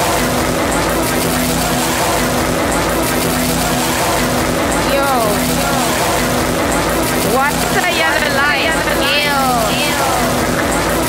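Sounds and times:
low drone notes: 0.0 - 11.0
noisy electronic wash: 0.0 - 11.0
processed voice sliding down: 4.9 - 6.5.

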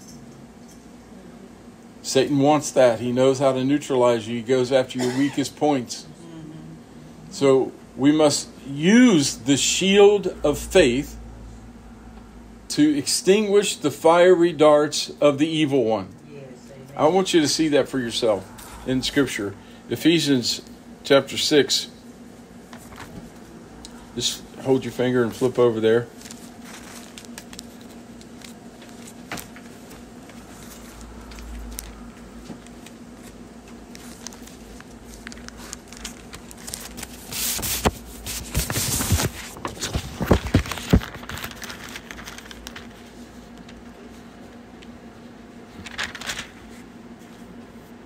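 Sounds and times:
steady low hum: 0.0 - 48.0
book pages flipping: 22.7 - 23.4, 25.4 - 44.9, 45.7 - 47.5.

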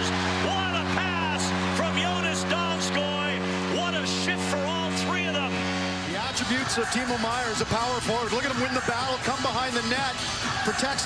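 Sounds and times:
goal horn long low note: 0.0 - 6.6
crowd cheering and shouting: 0.0 - 11.0.

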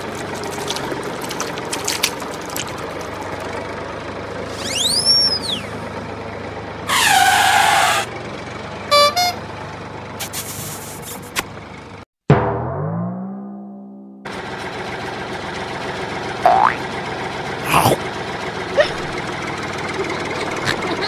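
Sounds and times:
truck engine sound effect: 0.0 - 21.0
whistle rising and falling: 4.5 - 5.8
horn blast: 8.9 - 9.4.

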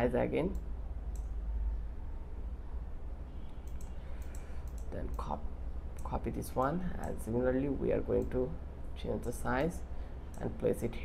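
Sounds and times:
low electrical hum: 0.0 - 11.0
computer mouse clicks: 0.5 - 1.4, 3.6 - 5.3.

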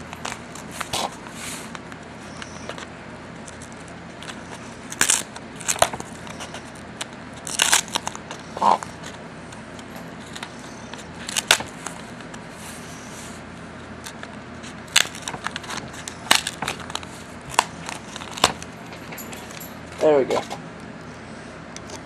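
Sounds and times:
plastic packaging crinkling: 0.0 - 9.2, 9.8 - 12.4, 14.0 - 20.5.

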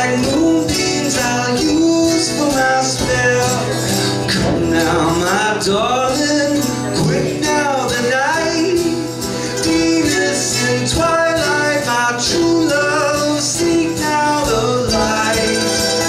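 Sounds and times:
hand percussion: 0.0 - 16.0
man singing: 0.0 - 16.0
mandolin: 0.0 - 16.0
strummed acoustic guitar: 0.0 - 16.0.

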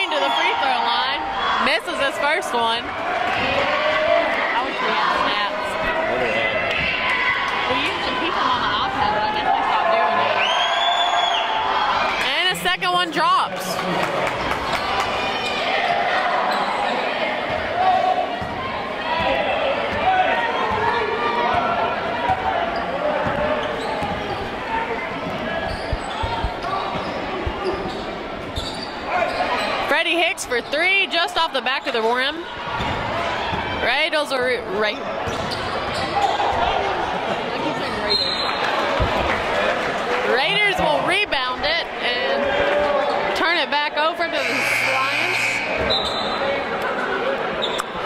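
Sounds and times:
babble of spectators: 0.0 - 48.0.

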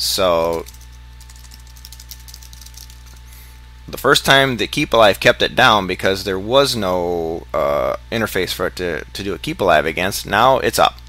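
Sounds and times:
low electrical hum: 0.0 - 11.0
keyboard keystrokes: 0.4 - 3.2.

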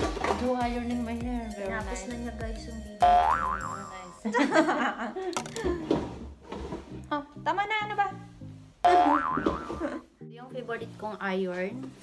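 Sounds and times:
wobbling boing sound effect: 3.0 - 4.0, 8.9 - 9.9
background music with bass line: 7.0 - 10.1.

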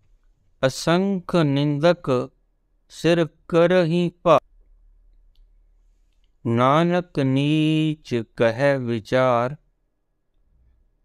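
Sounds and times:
man reciting: 0.6 - 4.5, 6.4 - 9.7.

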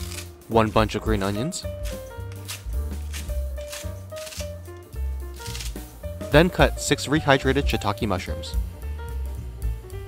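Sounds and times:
scissors snipping green onions: 0.0 - 0.4, 1.2 - 4.8
background music: 0.0 - 10.0.

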